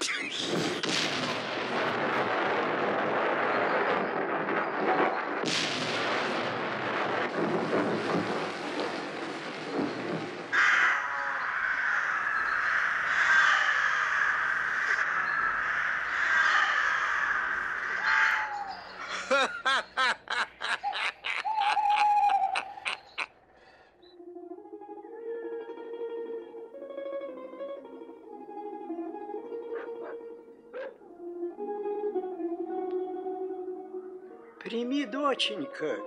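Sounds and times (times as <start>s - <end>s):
flock of crows cawing: 10.5s - 19.5s, 29.8s - 31.0s.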